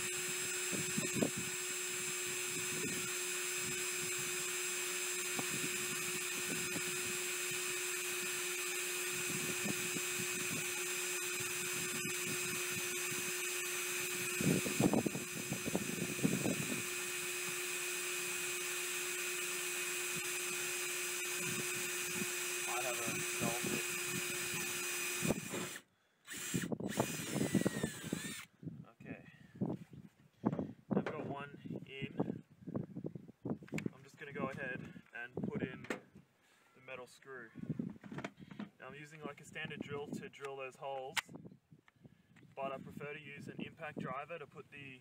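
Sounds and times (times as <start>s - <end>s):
cordless drill whining: 0.0s - 28.5s
man talking: 22.7s - 23.8s, 31.0s - 32.3s, 33.9s - 36.0s, 36.8s - 37.6s, 38.8s - 41.2s, 42.6s - 45.0s.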